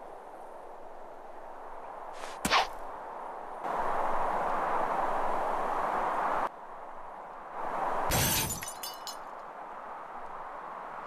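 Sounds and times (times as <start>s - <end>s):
glass shattering: 8.1s - 9.3s.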